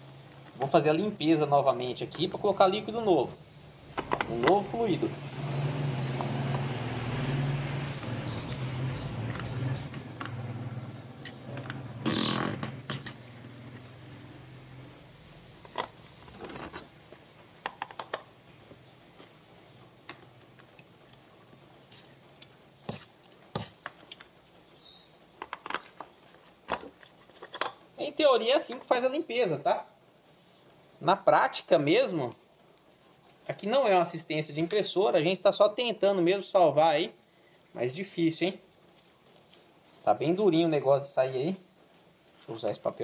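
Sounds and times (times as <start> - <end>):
light clicks and scrapes: 16.2 - 17.0.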